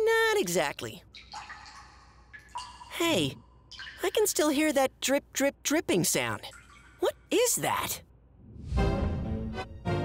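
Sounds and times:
cartoon water dripping: 0.2 - 8.0.

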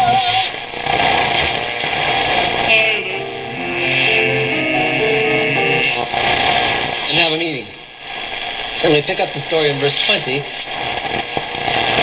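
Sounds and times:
radio static hiss: 0.0 - 4.3, 5.8 - 12.0
steady radio station tones: 2.0 - 12.0
wavering radio tone: 2.7 - 6.6.

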